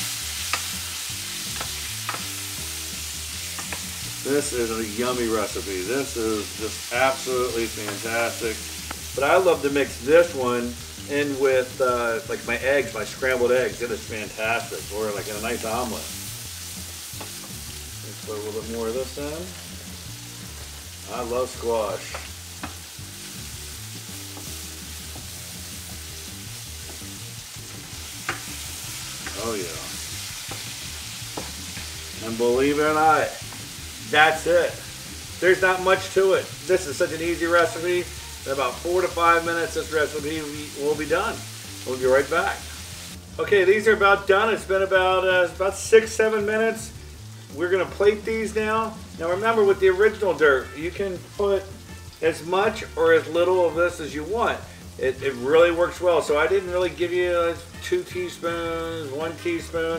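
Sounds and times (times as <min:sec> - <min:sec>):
vegetables sizzling in oil: 0:00.0 - 0:59.9
spatula clicking against pan: 0:00.5 - 0:00.8.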